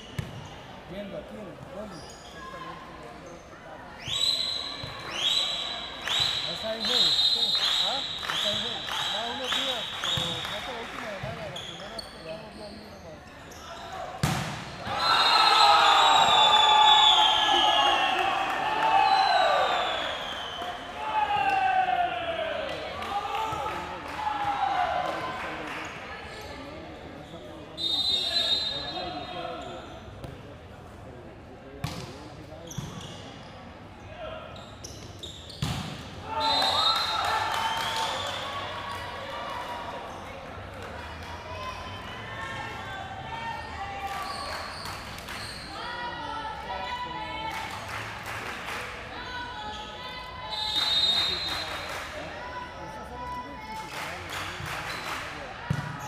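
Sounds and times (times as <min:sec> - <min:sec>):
volleyball smack: 0:14.2 - 0:14.7
crowd and players shouting: 0:14.8 - 0:25.7, 0:41.3 - 0:44.5, 0:45.6 - 0:48.1.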